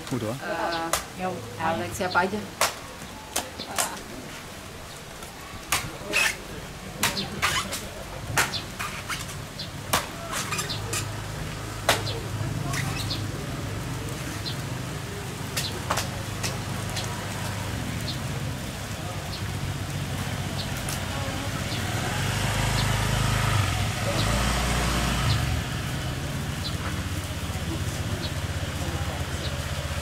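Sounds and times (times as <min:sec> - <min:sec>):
engine humming: 0:00.0 - 0:30.0
machete striking coconut: 0:07.0 - 0:07.6.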